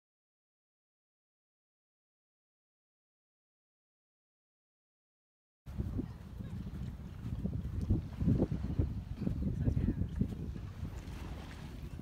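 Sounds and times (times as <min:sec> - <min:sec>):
wind buffeting microphone: 0:05.7 - 0:12.0.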